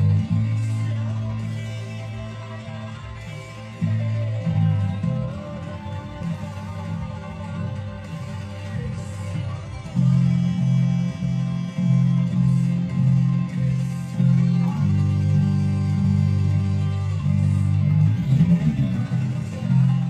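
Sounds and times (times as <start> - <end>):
band recording playing: 0.0 - 20.0
electric bass guitar notes: 0.0 - 20.0.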